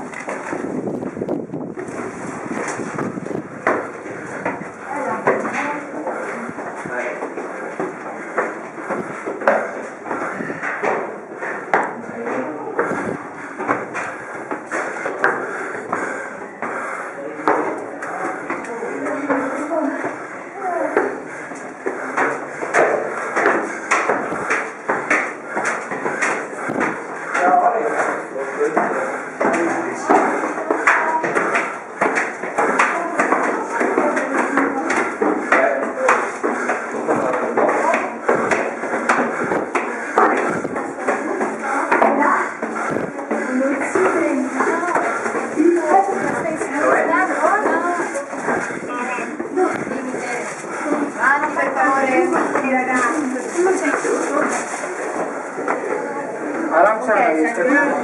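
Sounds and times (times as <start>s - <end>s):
footsteps on stone stairs: 0.0s - 58.0s
people chattering: 0.0s - 58.0s.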